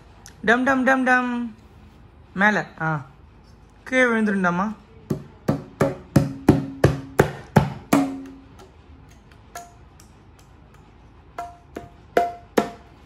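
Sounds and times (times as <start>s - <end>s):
hands slapping bongo drums: 5.1s - 10.5s.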